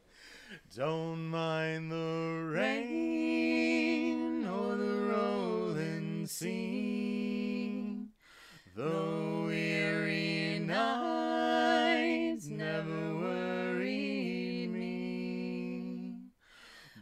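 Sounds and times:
two voices singing unaccompanied: 0.6 - 16.4.

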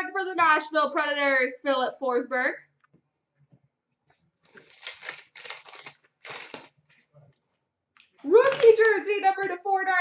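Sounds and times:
card pack wrapper tearing and crinkling: 4.4 - 6.8.

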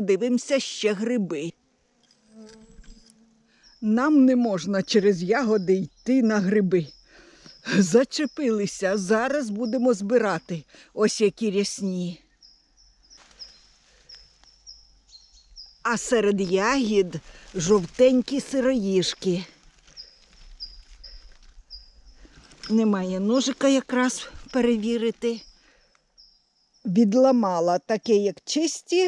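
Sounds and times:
woman speaking: 0.0 - 1.5, 3.8 - 6.9, 7.7 - 12.2, 15.9 - 19.5, 22.7 - 25.4, 26.9 - 29.0
flying insect buzzing: 0.1 - 5.8, 11.8 - 26.3
vegetation rustling: 12.9 - 26.1.

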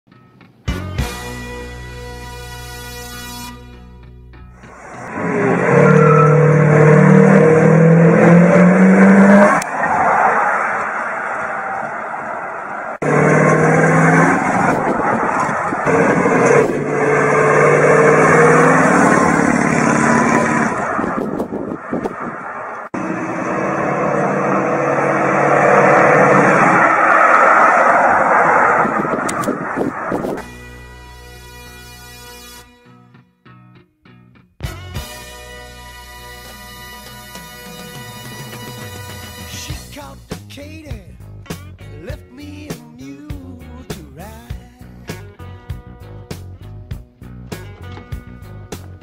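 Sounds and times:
car engine accelerating: 4.6 - 30.8.

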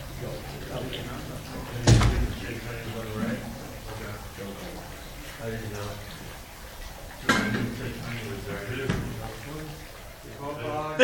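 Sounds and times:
low background voices: 0.0 - 11.0.

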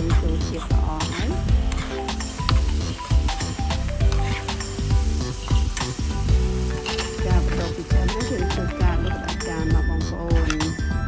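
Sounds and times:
spatula scraping a wok: 0.0 - 9.4
background music with steady beat: 0.0 - 11.0
meat sizzling in a wok: 0.0 - 11.0.

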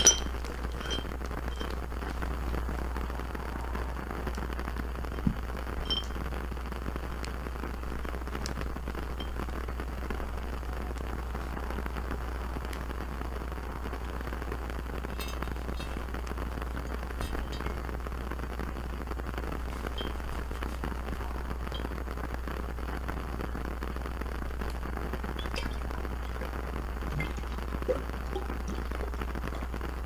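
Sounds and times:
glass jar clinking: 0.0 - 1.8, 5.9 - 6.2, 15.2 - 16.1, 17.2 - 17.8, 20.0 - 20.2, 25.4 - 26.5, 27.1 - 29.7
faint crackling hiss: 0.0 - 30.0.

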